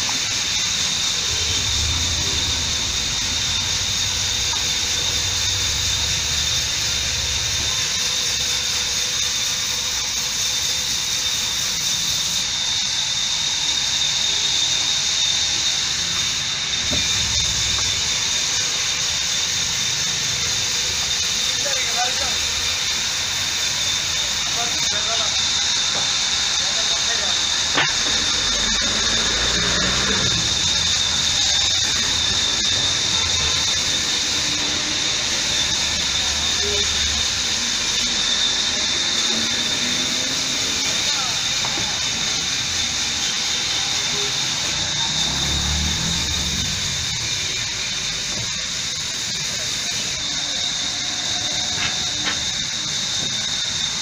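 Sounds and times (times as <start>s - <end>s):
steady high hiss: 0.0s - 54.0s
thin whistle-like tone: 0.1s - 54.0s.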